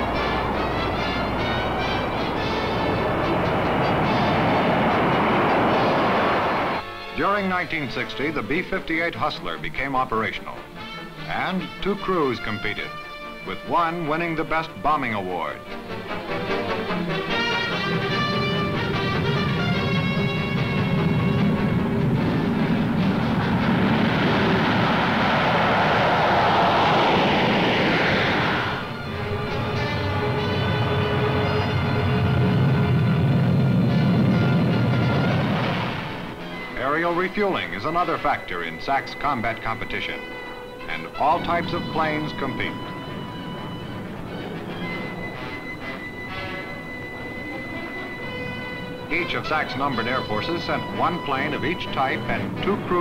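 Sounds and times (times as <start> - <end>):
jet engines roaring: 0.0 - 53.0
orchestral music: 0.0 - 53.0.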